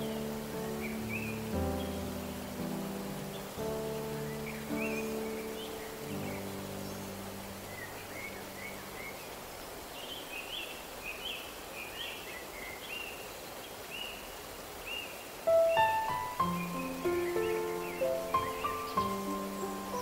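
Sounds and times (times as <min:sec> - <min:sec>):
music: 0:00.0 - 0:09.0, 0:15.5 - 0:20.0
soft sustained music chord: 0:00.0 - 0:09.5, 0:15.5 - 0:20.0
bird chirping: 0:00.0 - 0:20.0
rushing falling water: 0:00.0 - 0:20.0.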